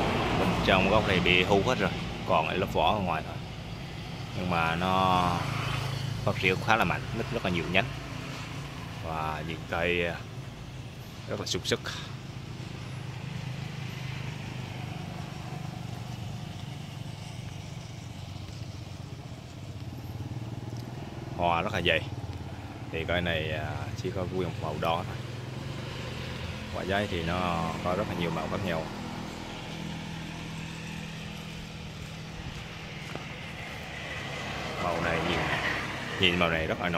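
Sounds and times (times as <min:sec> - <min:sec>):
engine running steadily: 0:00.0 - 0:36.9.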